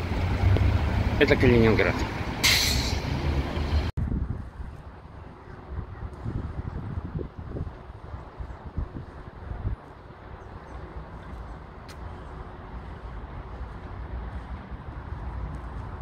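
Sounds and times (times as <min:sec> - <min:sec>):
idling vehicle engines: 0:00.0 - 0:03.9
distant traffic rumble: 0:00.0 - 0:16.0
short sharp hiss: 0:02.4 - 0:03.0.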